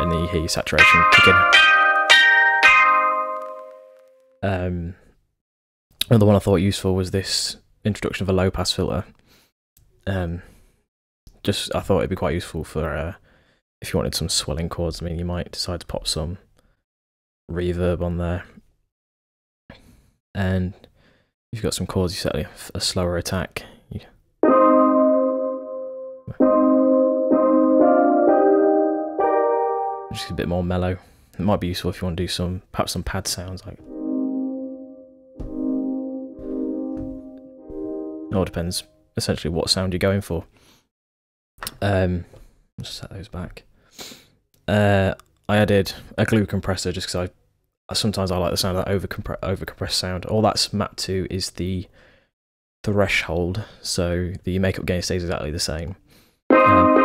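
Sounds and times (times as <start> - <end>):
steel drum notes: 0.0 - 4.0, 24.4 - 30.4, 33.8 - 38.8, 56.5 - 57.0.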